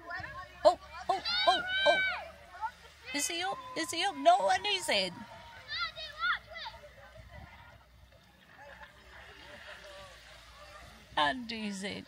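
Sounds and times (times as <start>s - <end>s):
faint voices of people: 4.8s - 11.9s.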